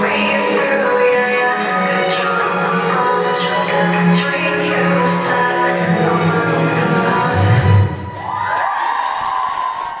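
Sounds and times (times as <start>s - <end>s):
audience cheering and whooping: 8.1s - 10.0s.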